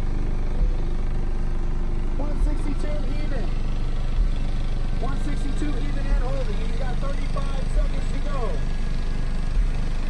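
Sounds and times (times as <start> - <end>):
heavy bass thump: 0.0 - 1.3, 2.3 - 3.0, 4.0 - 5.4, 9.6 - 10.0
bass-heavy music from subwoofers: 0.0 - 10.0.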